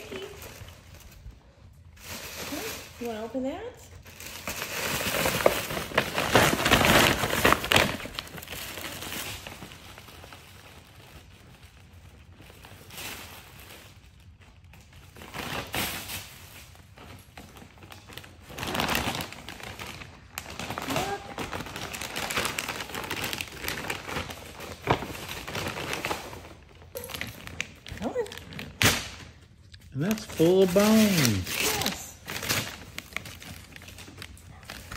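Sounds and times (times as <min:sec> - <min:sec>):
tissue paper rustling: 0:00.0 - 0:28.8, 0:30.0 - 0:34.9.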